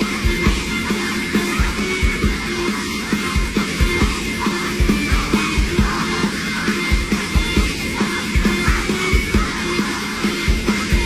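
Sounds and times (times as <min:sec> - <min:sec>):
live pop-rock music: 0:00.0 - 0:11.0.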